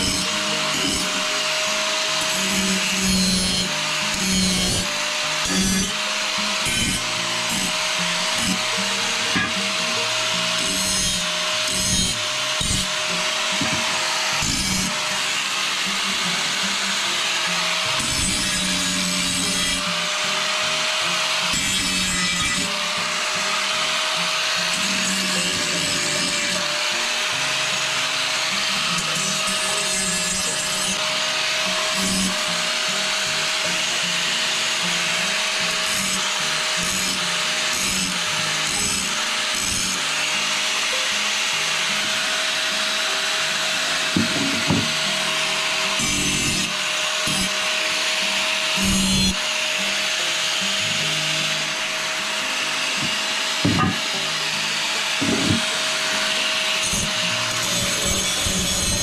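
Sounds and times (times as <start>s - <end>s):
angle grinder grinding steel: 0.0s - 59.0s.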